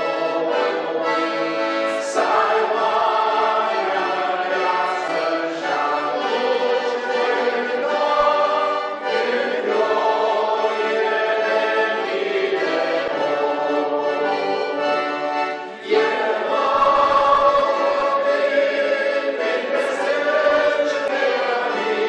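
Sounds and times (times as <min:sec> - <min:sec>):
congregation singing a hymn: 0:00.0 - 0:22.0.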